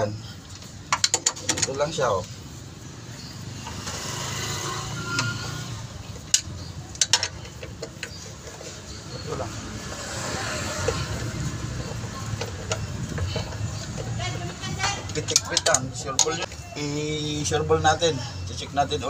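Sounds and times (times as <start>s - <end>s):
wrench clicking: 6.2s - 8.2s.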